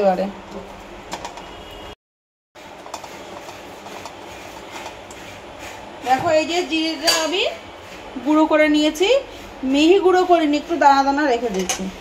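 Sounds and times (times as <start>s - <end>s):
mixture bubbling in a pan: 2.6s - 11.4s.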